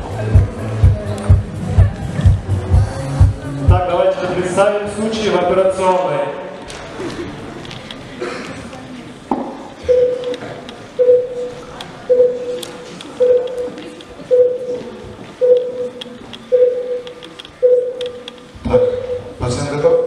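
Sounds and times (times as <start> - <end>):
heart monitor beeps over speakers: 9.8 - 20.0.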